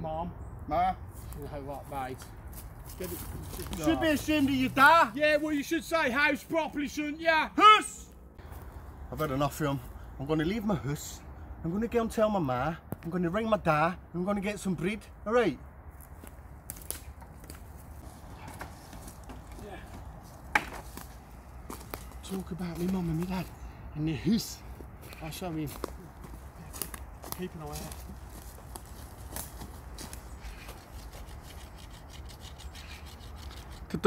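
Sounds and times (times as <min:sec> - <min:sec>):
footsteps on dry leaves: 0:01.1 - 0:05.6, 0:08.4 - 0:09.3, 0:15.9 - 0:23.6, 0:24.6 - 0:32.0
stick scraping against wood: 0:30.4 - 0:34.0.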